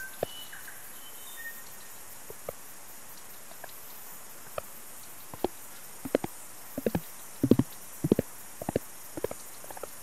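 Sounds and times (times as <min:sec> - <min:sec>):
steady high hiss: 0:00.0 - 0:10.0
low pitched pops: 0:05.4 - 0:09.4.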